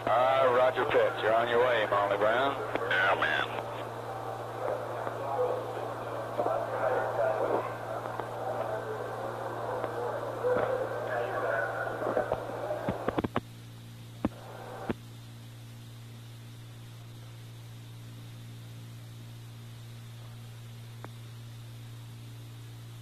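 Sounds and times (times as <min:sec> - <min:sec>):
steady low hum: 0:00.0 - 0:23.0
muffled radio voice chatter: 0:00.1 - 0:13.3.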